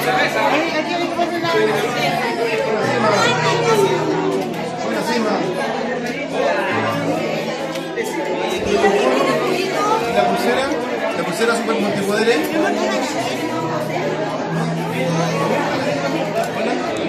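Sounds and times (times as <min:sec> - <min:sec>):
crowd hubbub: 0:00.0 - 0:17.0.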